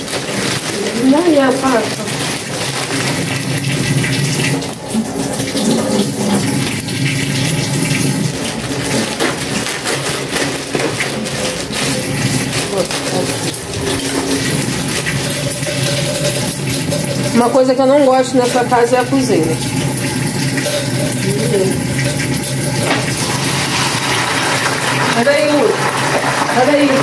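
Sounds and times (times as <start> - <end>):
tap running into a sink: 19.6 - 25.2.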